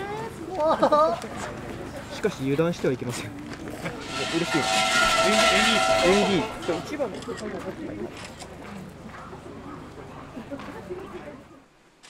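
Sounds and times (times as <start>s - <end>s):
voices and laughter: 0.0s - 2.2s, 7.1s - 11.6s.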